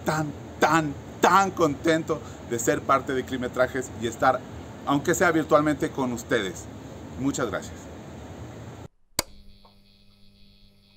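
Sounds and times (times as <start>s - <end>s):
faint electrical hum: 0.0s - 10.9s
outdoor background noise: 0.0s - 10.9s
sharp click: 9.2s - 9.8s.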